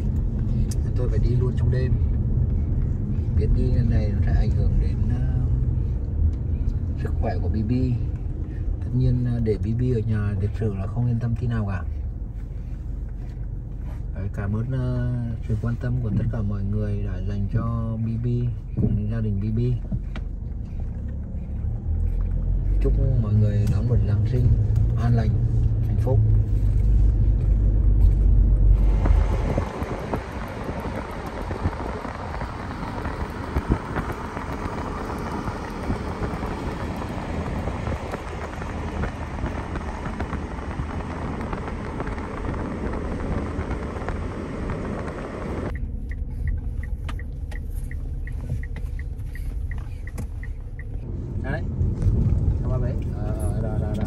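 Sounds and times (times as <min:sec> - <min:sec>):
engine and road rumble: 0:00.0 - 0:54.0.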